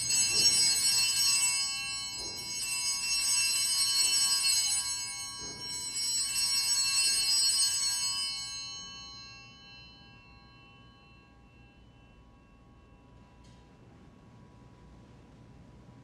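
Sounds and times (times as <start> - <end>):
altar bells jingling: 0.0 - 13.2.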